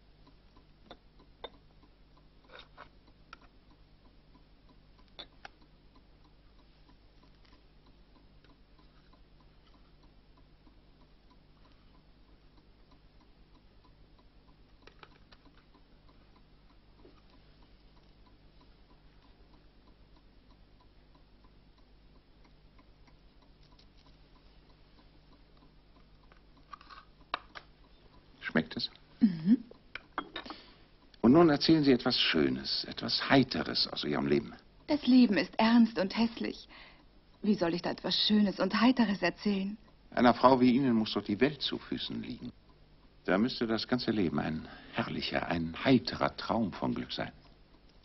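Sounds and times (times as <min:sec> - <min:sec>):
faint low hum: 0:00.0 - 0:48.0
faint regular ticking: 0:00.0 - 0:48.0.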